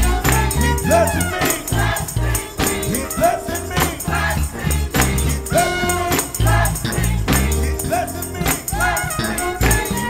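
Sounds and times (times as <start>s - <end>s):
bass guitar line: 0.0s - 10.0s
gospel choir singing: 0.0s - 10.0s.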